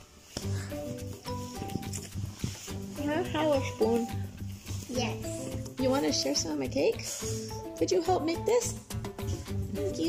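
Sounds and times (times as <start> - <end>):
background music with low beat: 0.2 - 10.0.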